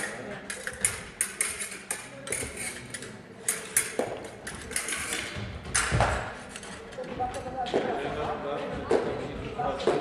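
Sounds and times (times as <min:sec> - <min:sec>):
fencing blades clashing: 0:00.0 - 0:08.0.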